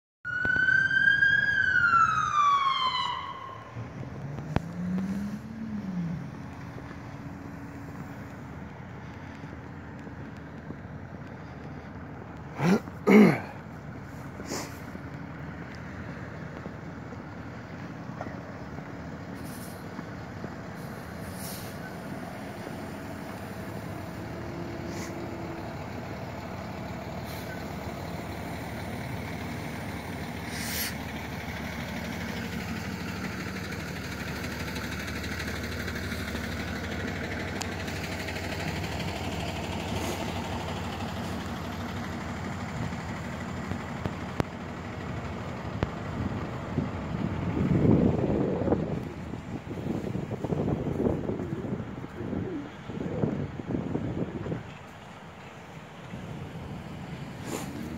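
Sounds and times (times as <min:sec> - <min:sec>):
road traffic: 0:00.2 - 0:57.9
heavy vehicle engines running: 0:00.3 - 0:57.9
uneven rumbling bursts: 0:00.3 - 0:57.9
brief hiss: 0:20.8 - 0:21.9.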